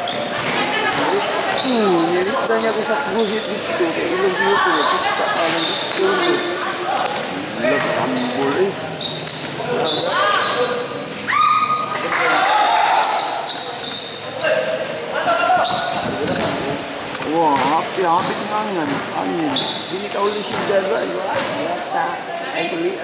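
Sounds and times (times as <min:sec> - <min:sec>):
basketball bouncing on court: 0:00.0 - 0:01.7, 0:07.0 - 0:08.2, 0:15.6 - 0:21.7
sneakers squeaking: 0:00.0 - 0:22.0
players calling out: 0:00.0 - 0:22.3.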